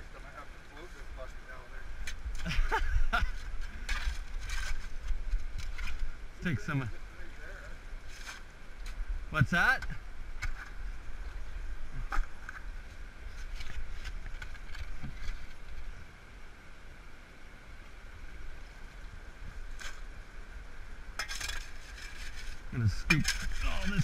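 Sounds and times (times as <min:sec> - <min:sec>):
creek water running: 0:00.0 - 0:24.0.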